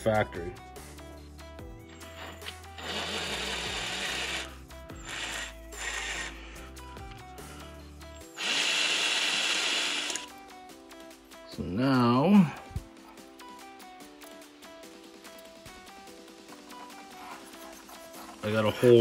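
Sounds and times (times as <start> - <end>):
background music: 0.0 - 19.0
handheld power tool running: 2.0 - 6.6, 8.2 - 10.3.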